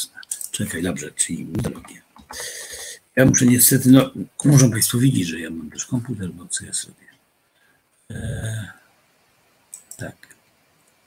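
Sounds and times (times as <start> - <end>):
faint computer clicks: 9.7 - 11.0.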